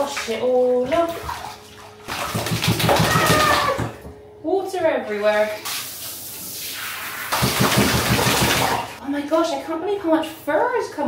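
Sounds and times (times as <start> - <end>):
water splashing into bathwater: 0.0 - 4.1, 5.4 - 9.0.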